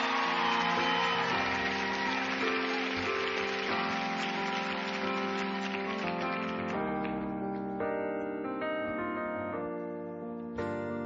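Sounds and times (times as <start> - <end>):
piano and acoustic guitar ballad: 0.0 - 11.0.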